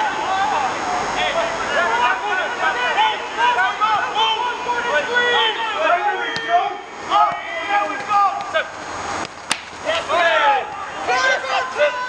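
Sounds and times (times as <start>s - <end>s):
players shouting: 0.0s - 8.8s, 9.5s - 12.0s.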